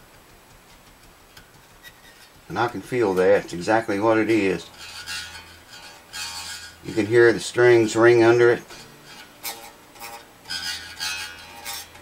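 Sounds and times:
electric guitar strings ringing: 2.5s - 12.0s.

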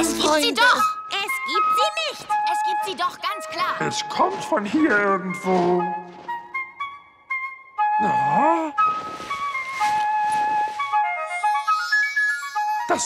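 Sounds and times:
soft flute-like melody: 0.0s - 13.0s.

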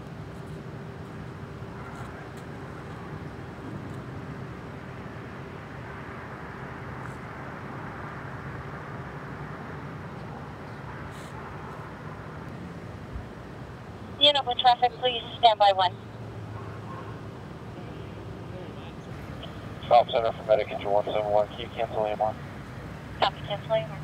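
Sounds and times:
faint constant tone: 0.0s - 24.0s
street noise: 0.0s - 24.0s
vehicle engines idling: 0.0s - 24.0s.

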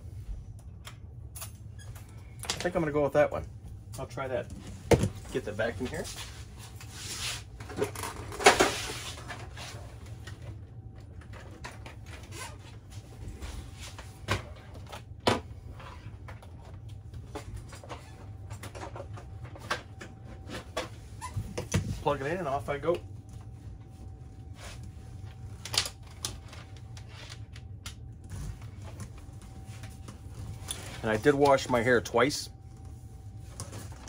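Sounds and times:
low steady hum: 0.0s - 34.0s.

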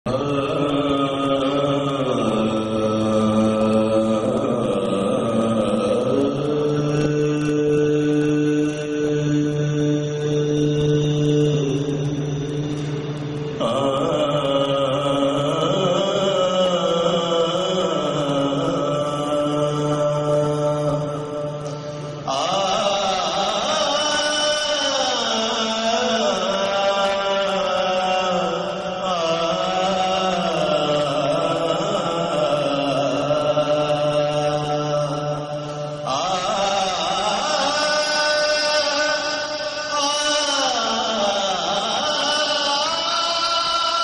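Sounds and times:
person chanting: 0.0s - 44.0s.

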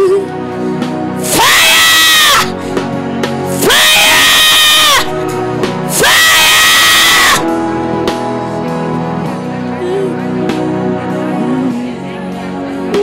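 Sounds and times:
background music with sustained chords: 0.0s - 13.0s
person screaming: 1.2s - 2.6s, 3.6s - 5.1s, 5.9s - 7.5s.

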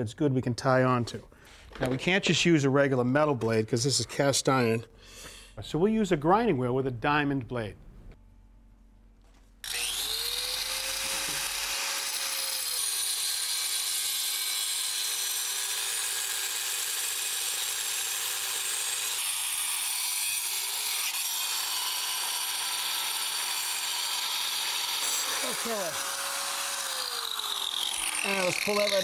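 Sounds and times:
angle grinder cutting iron pipe: 9.6s - 29.0s.

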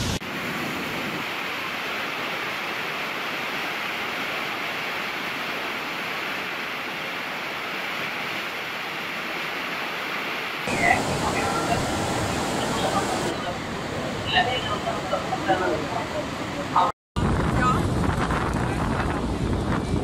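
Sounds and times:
waterfall rushing: 0.0s - 16.9s.

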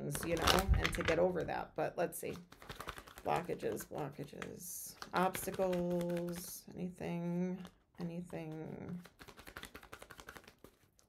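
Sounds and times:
cards being shuffled: 0.1s - 1.4s, 2.3s - 6.5s, 7.6s - 11.0s.

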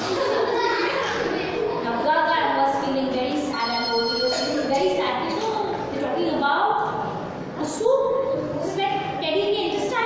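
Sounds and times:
woman speaking: 1.8s - 7.0s, 7.6s - 10.0s
electronic ringing tone: 3.5s - 4.6s.

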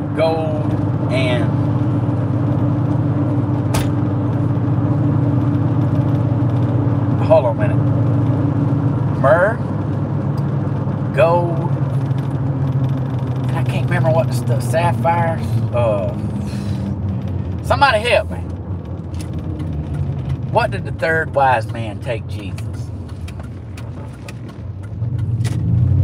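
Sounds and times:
car engine and road drone: 0.0s - 26.0s
sharp click: 3.7s - 4.0s.

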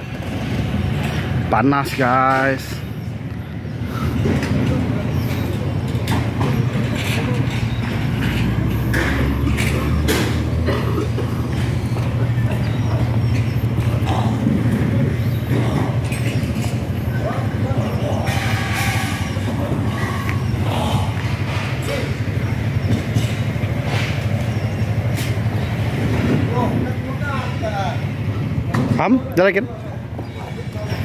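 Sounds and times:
steady low rumble: 0.0s - 29.0s
faint voices: 0.0s - 31.0s.

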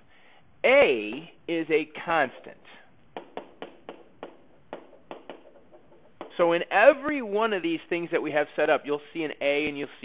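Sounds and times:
stylus tapping on surface: 2.2s - 6.7s.

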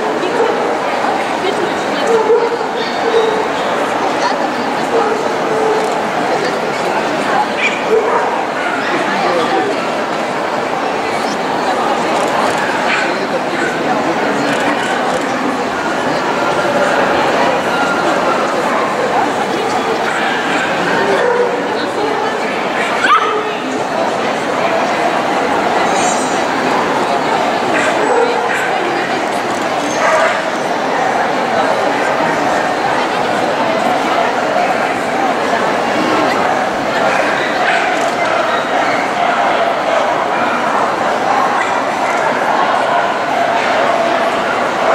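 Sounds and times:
crowd chatter: 0.0s - 44.9s
small dogs barking: 7.4s - 9.2s, 12.6s - 13.8s, 22.8s - 23.6s, 29.9s - 30.6s.

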